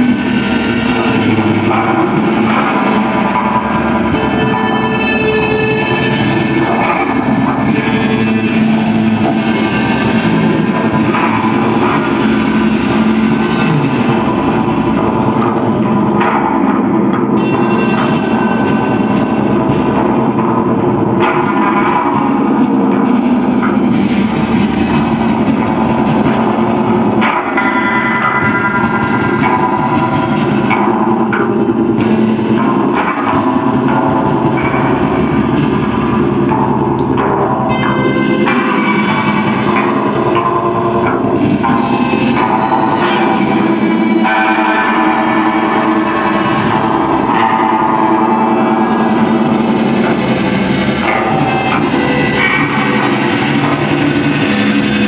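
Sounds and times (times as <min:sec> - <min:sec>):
higher sustained guitar tones: 0:00.0 - 0:55.0
loud electric guitar noise: 0:00.0 - 0:55.0.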